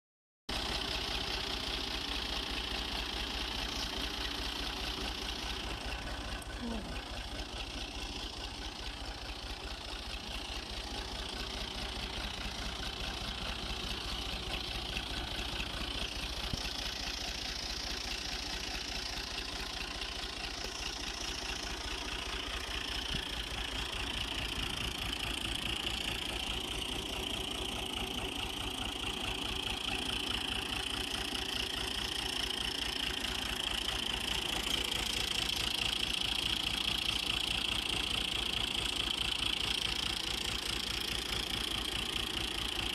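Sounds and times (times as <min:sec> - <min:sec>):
diesel tractor engine idling: 0:00.5 - 0:42.9.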